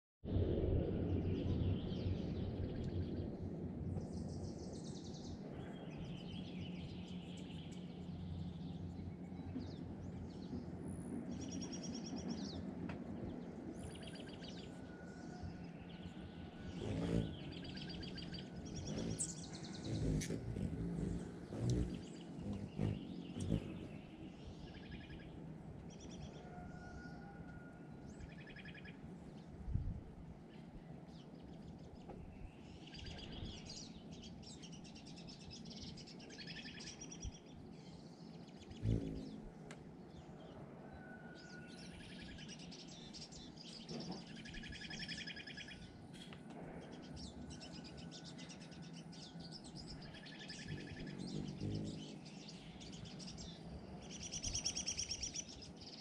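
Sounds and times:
songbirds chirping: 0.9 - 56.0.

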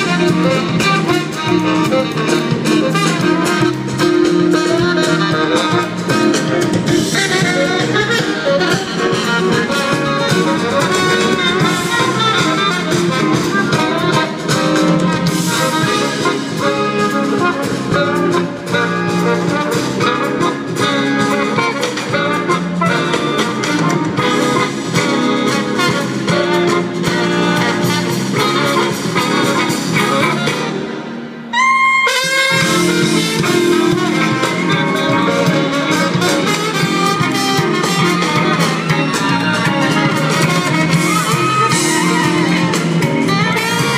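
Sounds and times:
jazz band playing: 0.0 - 43.9.

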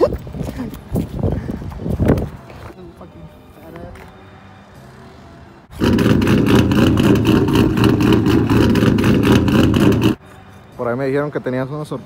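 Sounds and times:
loud vehicle engine running: 5.7 - 10.2.

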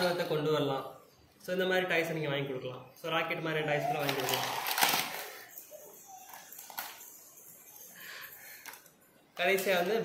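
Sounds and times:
plastic toys on tile floor: 3.7 - 10.0.

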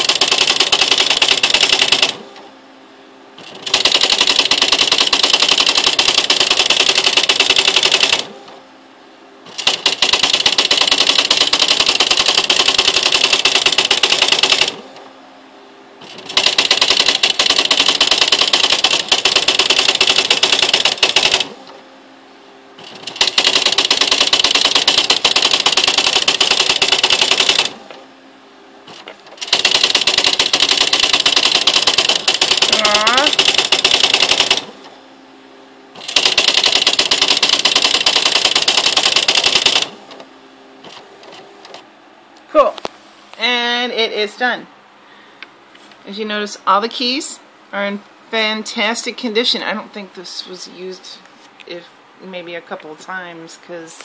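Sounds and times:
typewriter rapid type strikes: 0.0 - 2.2, 3.4 - 8.3, 9.5 - 14.8, 16.0 - 21.6, 22.8 - 27.8, 28.9 - 34.8, 36.0 - 40.0.

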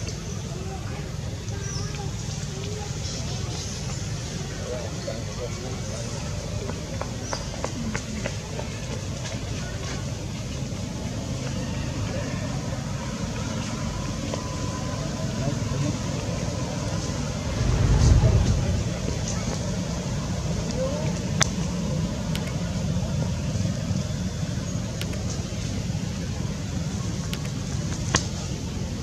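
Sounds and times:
outdoor background rumble: 0.0 - 29.0.

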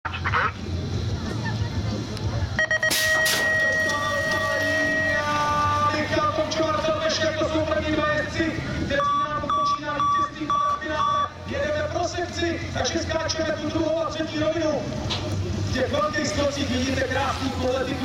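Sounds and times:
voices: 0.1 - 18.0
short beeps: 2.6 - 5.9, 9.0 - 11.4
short electronic beeps: 2.6 - 5.9, 9.0 - 11.4
long steady tone: 2.6 - 6.3
metallic strikes of start gate: 2.8 - 5.2.

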